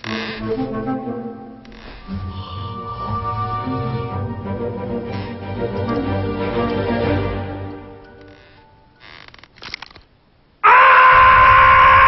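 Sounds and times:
man screaming: 10.6s - 12.0s.

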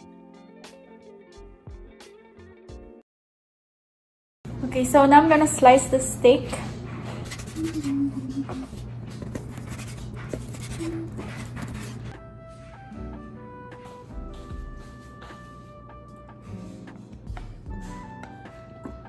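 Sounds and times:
soft background music: 9.6s - 19.0s.

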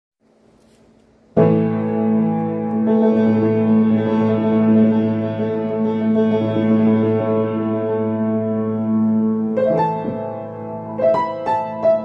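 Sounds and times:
piano chord ringing: 1.4s - 12.0s.

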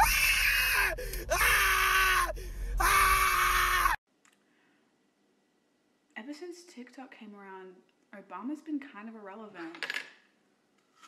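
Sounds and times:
person screaming: 0.0s - 4.0s.

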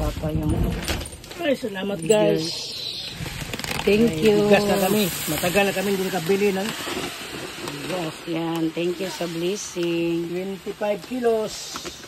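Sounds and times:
plastic sack rustling: 0.0s - 12.0s
people talking: 1.4s - 6.8s, 7.6s - 12.0s.

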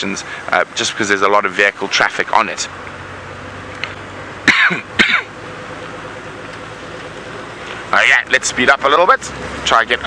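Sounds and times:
vehicle driving on dirt road: 0.0s - 10.0s
person coughing: 4.4s - 5.3s.

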